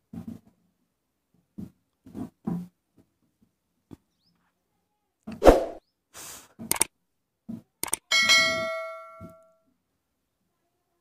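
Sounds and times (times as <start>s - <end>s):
quick clicks: 6.6s - 6.9s, 7.8s - 8.0s
bell ringing: 8.1s - 9.5s.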